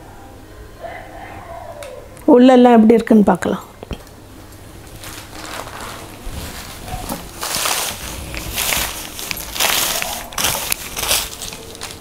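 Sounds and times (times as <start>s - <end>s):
cloth rustling: 4.9s - 12.0s.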